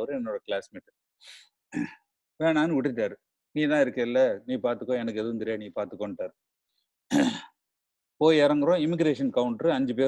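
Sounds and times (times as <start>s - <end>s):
man clearing his throat: 1.7s - 2.0s, 7.1s - 7.6s.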